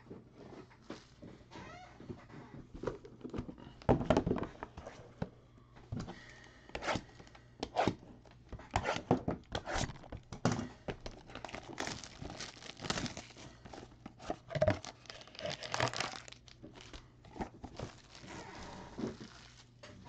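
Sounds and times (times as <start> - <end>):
foil wrappers crinkling: 11.1 - 20.0.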